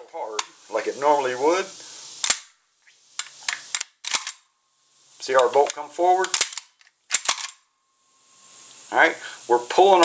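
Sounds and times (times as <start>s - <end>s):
bolt clicks: 3.2s - 4.4s, 5.4s - 7.6s
shotgun action clacking: 6.2s - 7.6s.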